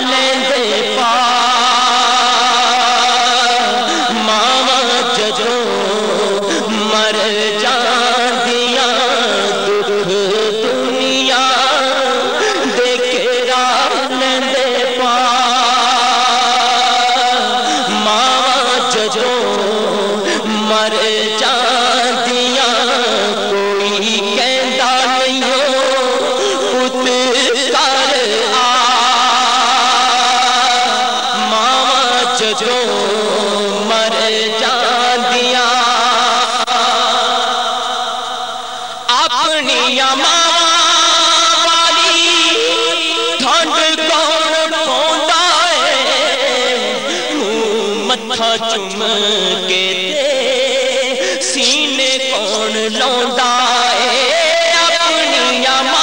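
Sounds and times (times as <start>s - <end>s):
man singing a long note: 0.0s - 56.0s.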